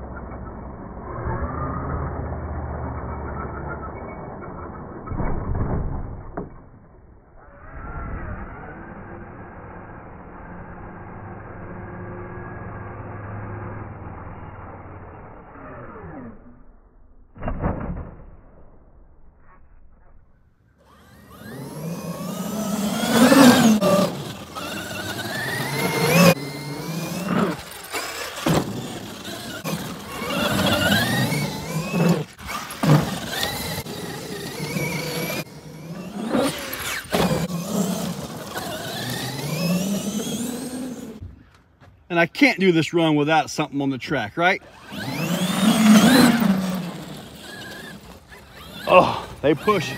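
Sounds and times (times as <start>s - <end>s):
electric motor whining: 20.8s - 41.2s, 44.6s - 49.9s.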